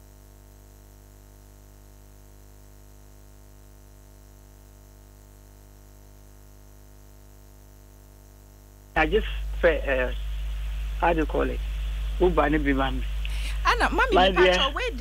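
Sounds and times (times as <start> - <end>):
electrical hum and buzz: 0.0 - 15.0.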